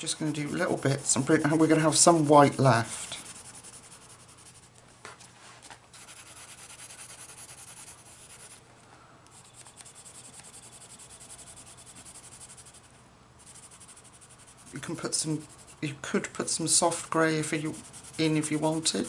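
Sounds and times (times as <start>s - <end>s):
pencil scratching on paper: 0.1s - 4.7s, 6.0s - 8.6s, 9.4s - 16.0s, 16.8s - 19.0s.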